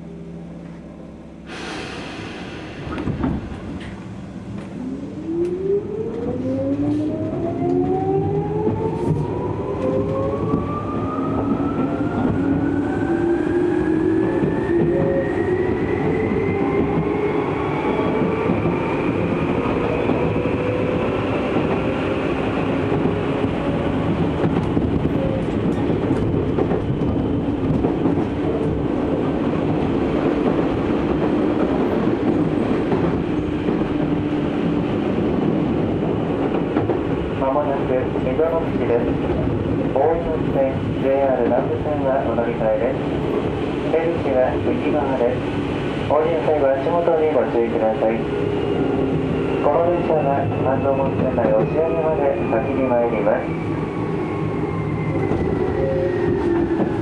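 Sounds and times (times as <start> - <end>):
train running noise: 0.0 - 57.0.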